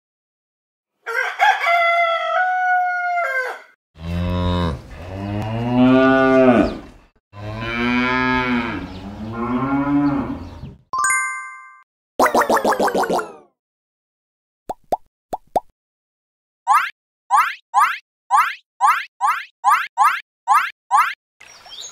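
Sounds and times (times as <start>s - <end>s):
rooster crowing: 1.0s - 3.8s
cow mooing: 4.0s - 6.8s, 7.4s - 10.7s.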